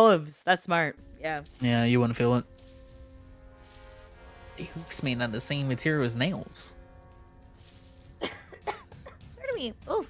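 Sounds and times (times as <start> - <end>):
faint background music: 0.5 - 10.0
person coughing: 8.2 - 9.2.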